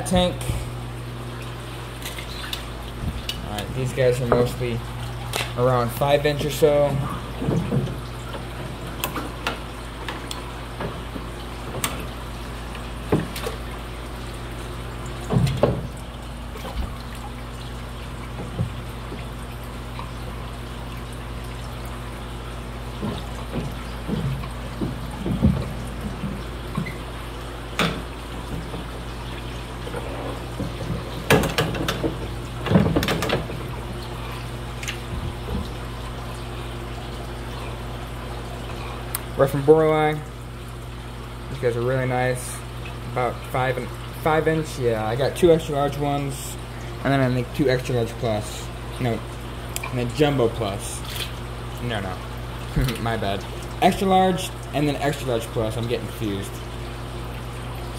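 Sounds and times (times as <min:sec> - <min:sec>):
water splashing and dripping: 0:00.0 - 0:57.9.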